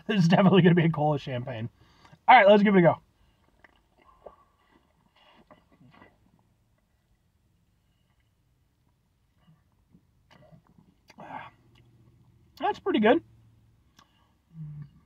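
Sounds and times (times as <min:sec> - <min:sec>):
sipping and swallowing soda: 0:03.3 - 0:07.0.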